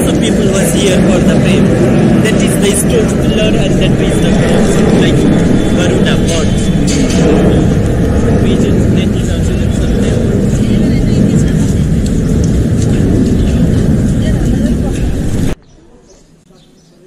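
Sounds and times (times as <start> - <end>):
low steady rumbling: 0.0 - 15.6.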